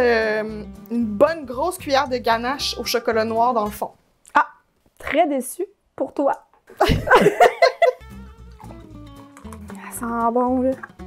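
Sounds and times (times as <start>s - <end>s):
woman laughing: 6.8s - 8.0s.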